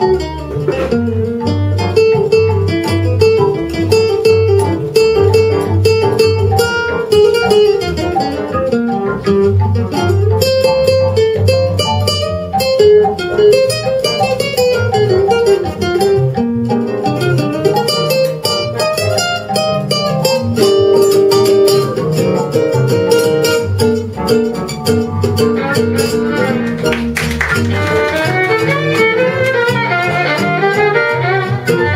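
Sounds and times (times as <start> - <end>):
acoustic guitar solo: 0.0 - 31.9
piano: 0.0 - 31.9
upright bass: 0.0 - 31.9.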